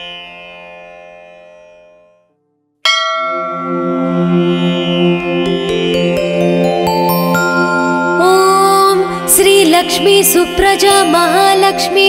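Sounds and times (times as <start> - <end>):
bell ringing: 2.9 - 10.0
devotional music: 2.9 - 12.0
held instrumental drone: 3.1 - 12.0.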